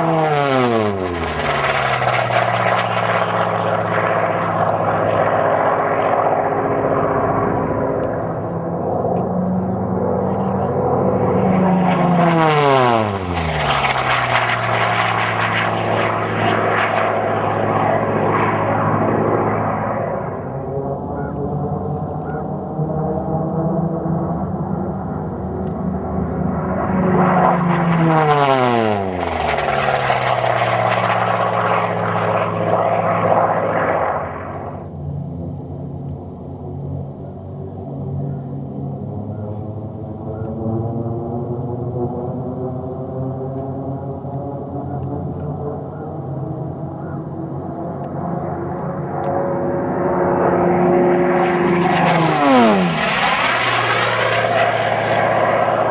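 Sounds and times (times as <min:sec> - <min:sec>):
propeller plane flying past: 0:00.0 - 0:55.9
steady engine drone: 0:00.0 - 0:55.9.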